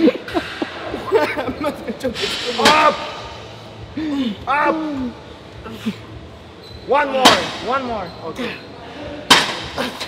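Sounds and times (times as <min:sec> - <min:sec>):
laughter: 0:00.0 - 0:02.0.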